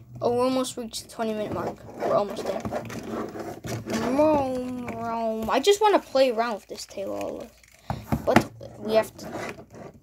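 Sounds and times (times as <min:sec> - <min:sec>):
toy figure being handled: 0:01.4 - 0:10.0.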